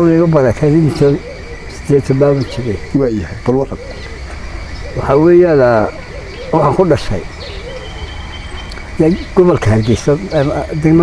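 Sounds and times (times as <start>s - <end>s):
soft hooting bird call: 0.0s - 9.4s.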